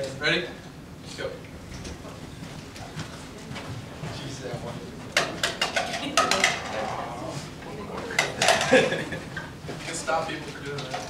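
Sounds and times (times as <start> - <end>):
sharp clatters and knocks: 5.1 - 6.8
indistinct voices: 5.8 - 8.8.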